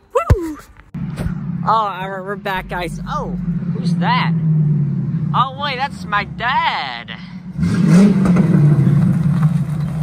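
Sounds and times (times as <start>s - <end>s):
car engine running: 0.8s - 10.0s.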